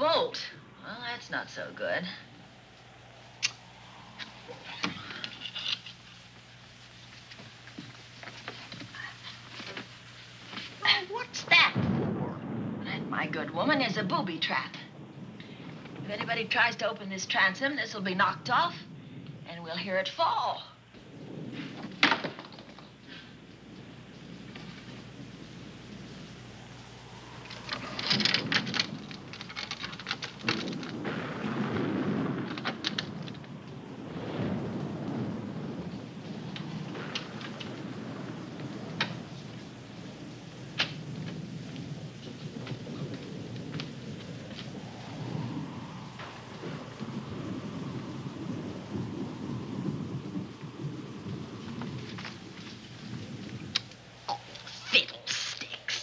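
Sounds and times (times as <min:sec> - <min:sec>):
rolling thunder: 0:00.0 - 0:54.6
sharp crackles: 0:00.0 - 0:56.0
steady rain: 0:00.0 - 0:56.0.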